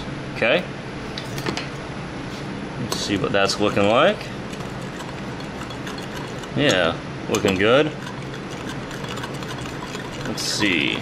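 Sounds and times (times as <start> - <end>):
low background hum: 0.0 - 11.0
metal spoon stirring in glass cup: 3.0 - 11.0.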